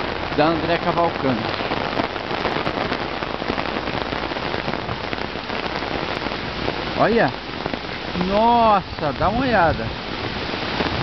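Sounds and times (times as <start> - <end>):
heavy rain pouring: 0.0 - 11.0
sharp ticks of raindrops: 0.0 - 11.0.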